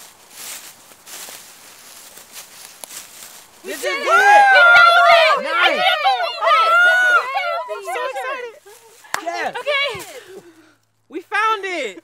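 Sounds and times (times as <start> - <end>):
people exclaiming and squealing: 3.6 - 10.7.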